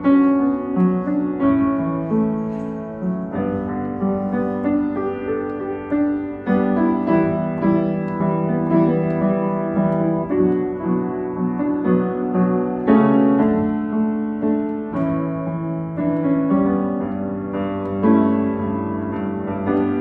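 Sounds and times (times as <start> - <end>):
upright piano chords: 0.0 - 20.0.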